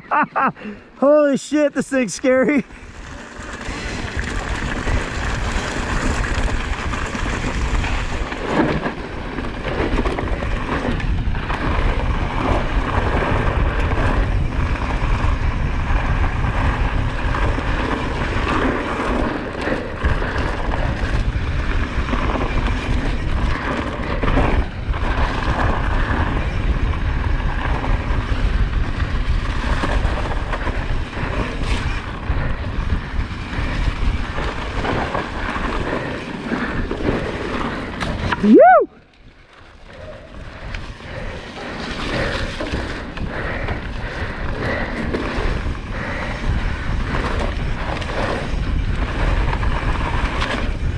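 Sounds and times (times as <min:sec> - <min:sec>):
bike tyres rolling on dirt: 0:00.0 - 0:50.9
wind noise on microphone: 0:02.7 - 0:50.9.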